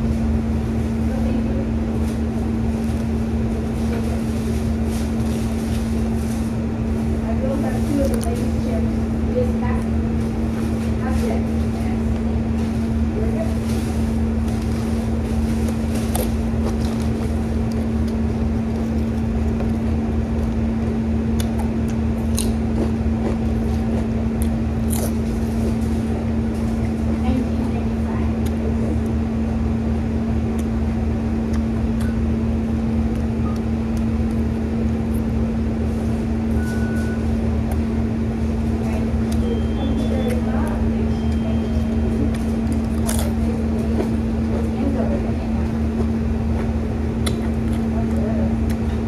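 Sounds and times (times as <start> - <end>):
loud low hum with rumble: 0.0 - 49.0
sandwich being chewed: 14.3 - 27.0, 41.3 - 44.7
high beep: 36.6 - 37.3, 39.4 - 40.4.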